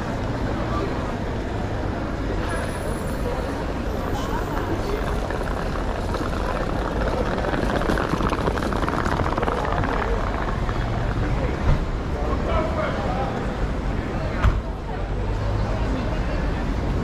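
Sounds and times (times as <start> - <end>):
low rumble of traffic: 0.0 - 17.0
passers-by talking: 0.0 - 17.0.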